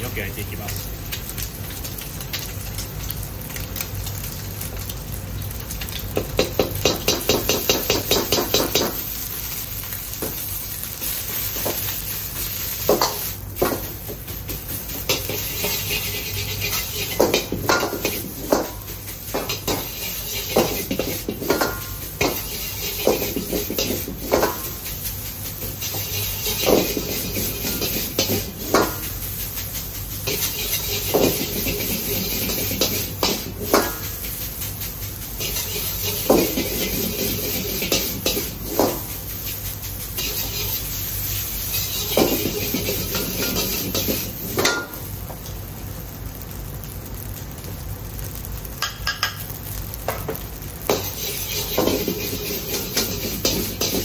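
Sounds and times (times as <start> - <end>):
food sizzling: 0.0 - 54.0
gas burner hum: 0.0 - 54.0.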